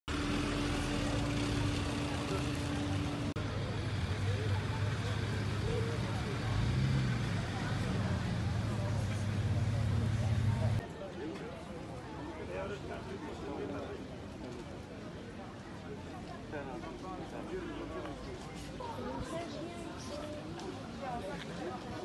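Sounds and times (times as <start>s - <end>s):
vehicle engine running: 0.1s - 10.8s
people talking indistinctly: 1.5s - 14.2s.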